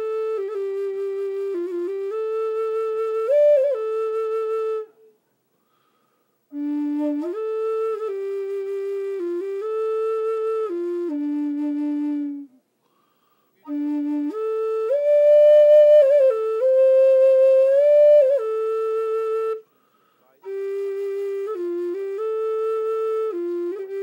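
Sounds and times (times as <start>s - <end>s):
flute playing held notes: 0.0s - 5.2s, 6.5s - 12.6s, 13.6s - 24.0s.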